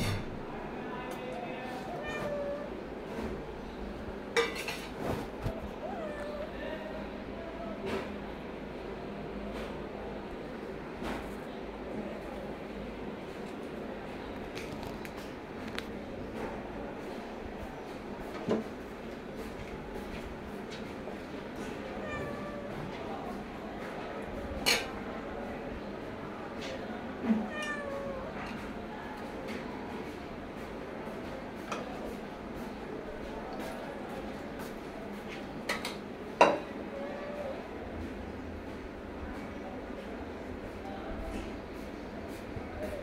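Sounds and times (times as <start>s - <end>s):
cat meowing: 1.8s - 2.8s, 5.7s - 6.7s, 21.9s - 23.0s, 27.4s - 28.4s.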